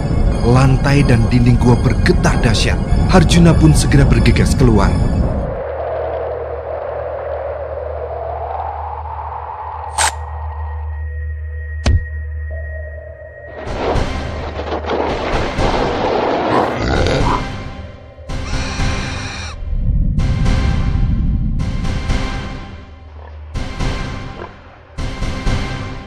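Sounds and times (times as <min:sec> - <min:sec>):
dramatic soundtrack music: 0:00.0 - 0:26.0.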